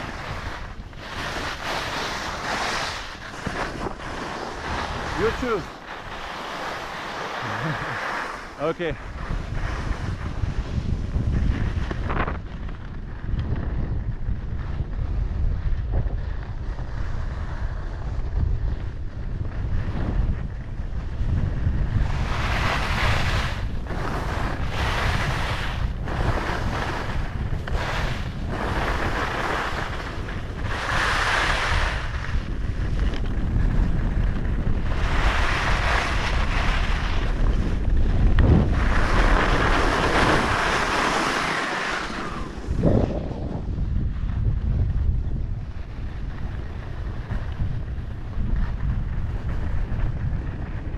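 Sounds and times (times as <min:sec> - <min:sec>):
skis scraping over snow: 0:00.0 - 0:50.9
wind buffeting microphone: 0:00.0 - 0:50.9.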